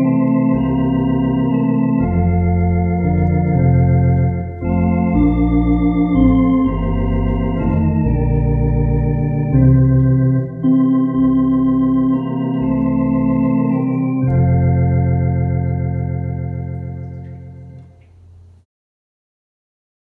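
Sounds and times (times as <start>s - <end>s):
deep organ bass line: 0.0s - 18.0s
electronic organ playing hymn chords: 0.0s - 18.0s.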